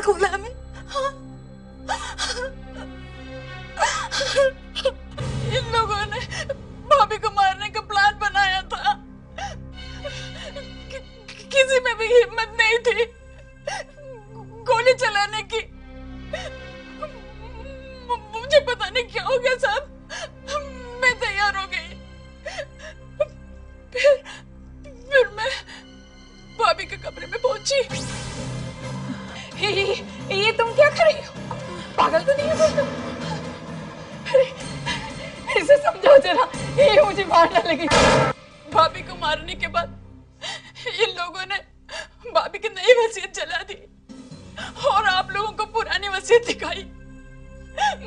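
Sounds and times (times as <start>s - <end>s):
woman crying and sobbing: 0.0s - 15.7s, 16.3s - 25.9s, 28.8s - 48.0s
low background music drone: 0.0s - 48.0s
woman sobbing wails: 1.9s - 2.9s, 3.8s - 6.6s, 34.2s - 38.0s.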